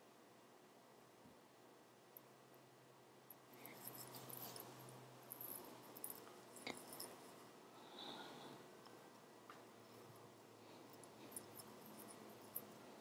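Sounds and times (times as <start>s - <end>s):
hands rustling yarn cushion: 3.7s - 7.4s.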